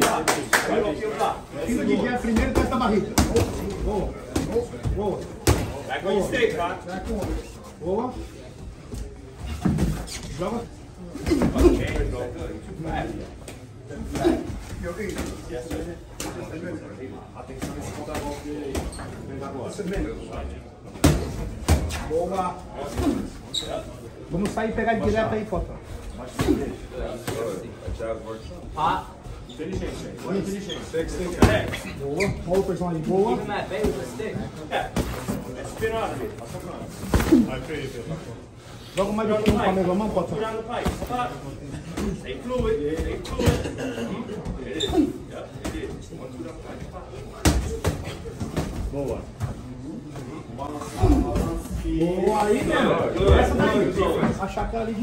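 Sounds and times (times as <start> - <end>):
voices in a gym: 0.0 - 55.0.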